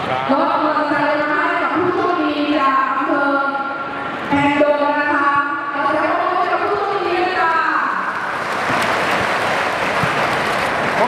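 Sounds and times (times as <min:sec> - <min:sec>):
crowd applauding: 0:08.1 - 0:11.0.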